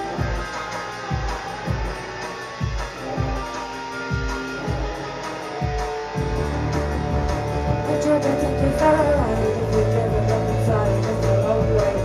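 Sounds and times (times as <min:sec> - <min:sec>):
live band playing: 0:00.0 - 0:12.0
low thumping beat: 0:00.0 - 0:12.0.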